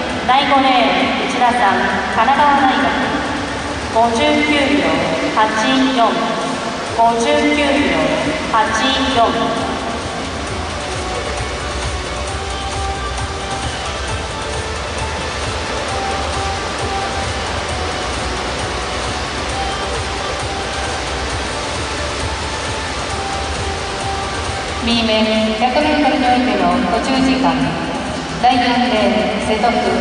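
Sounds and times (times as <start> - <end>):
crowd noise in indoor arena: 0.0 - 30.0.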